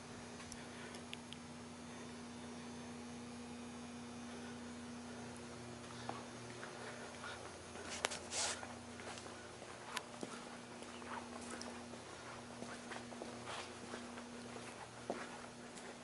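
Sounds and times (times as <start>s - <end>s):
steady low hum: 0.0s - 16.0s
faint footsteps: 4.2s - 16.0s.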